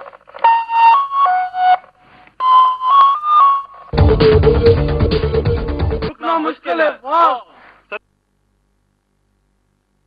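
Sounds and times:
full band with a beat: 0:04.0 - 0:06.1
slow melody over loudspeakers: 0:04.0 - 0:06.1.

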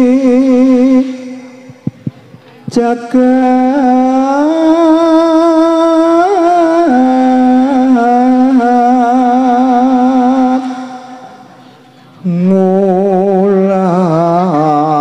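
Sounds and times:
person singing unaccompanied: 0:00.0 - 0:15.0.

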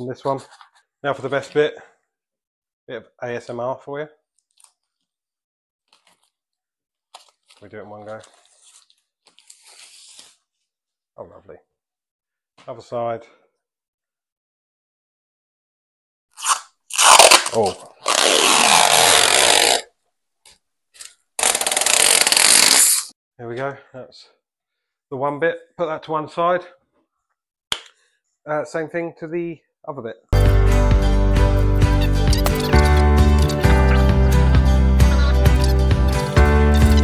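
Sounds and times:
faint plastic film crackle: 0:07.1 - 0:09.8
protective film peeling off plastic: 0:16.4 - 0:19.8, 0:21.0 - 0:23.1.

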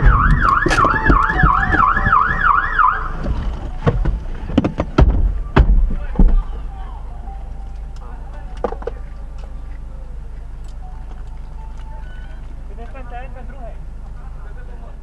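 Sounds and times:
faint voices: 0:04.2 - 0:15.0.

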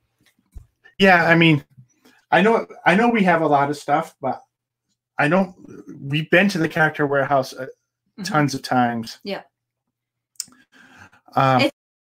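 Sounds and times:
person speaking: 0:01.0 - 0:04.4, 0:05.2 - 0:09.4, 0:11.4 - 0:11.8
faint breathy noise: 0:10.7 - 0:11.4.

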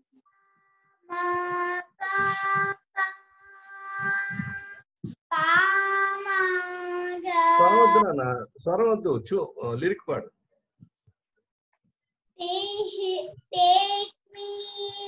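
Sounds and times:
young children singing: 0:01.1 - 0:08.2, 0:12.4 - 0:15.0.

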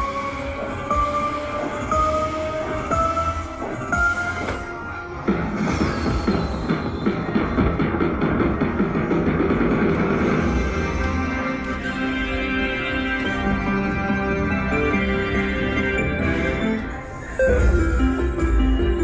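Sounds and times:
busy slot machine jingle: 0:13.4 - 0:19.0
tone stepping up in pitch: 0:17.3 - 0:18.8.

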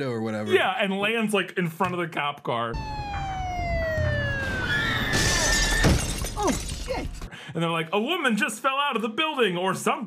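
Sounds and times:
police siren winding down: 0:02.7 - 0:05.8
glass shattering: 0:04.9 - 0:07.3.

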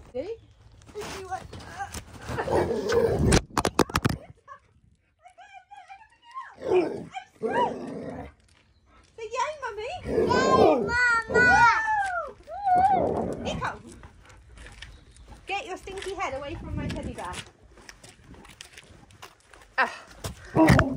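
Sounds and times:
scuffling: 0:00.0 - 0:02.8.

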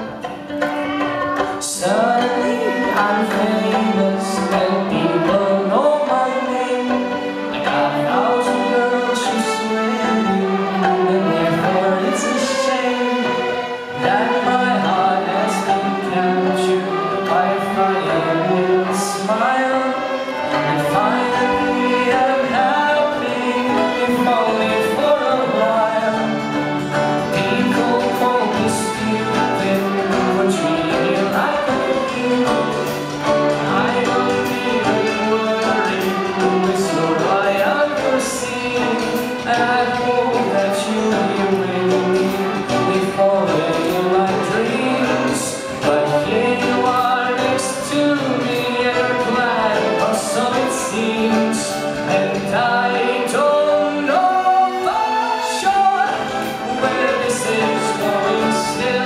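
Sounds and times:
children singing: 0:00.0 - 0:59.0
violin ensemble playing held notes: 0:00.0 - 0:59.0.

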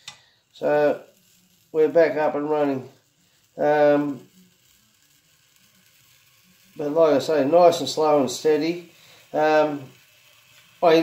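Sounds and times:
soldering iron sizzling through foam: 0:00.0 - 0:11.0.

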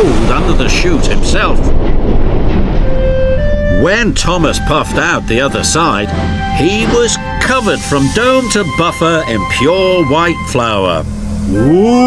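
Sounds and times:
background music: 0:02.6 - 0:12.0.

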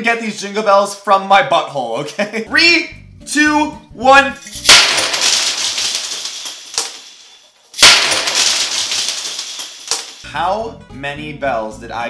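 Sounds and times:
jingle bells spilling on desk: 0:04.4 - 0:10.3.

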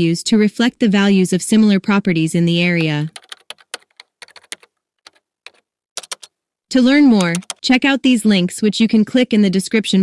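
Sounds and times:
keyboard typing: 0:02.8 - 0:06.4, 0:07.2 - 0:07.7.

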